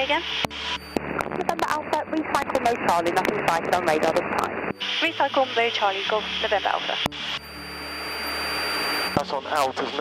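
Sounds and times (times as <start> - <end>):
thin high whine: 0.0 - 9.8
aircraft engine drone: 0.0 - 10.0
radio static hiss: 0.0 - 10.0.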